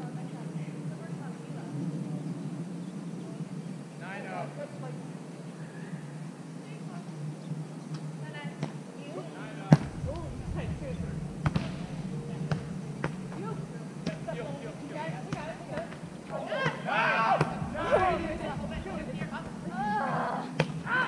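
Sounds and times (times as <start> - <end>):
volleyball smacks: 11.4 - 11.9, 20.6 - 20.9
players calling out: 13.6 - 21.0.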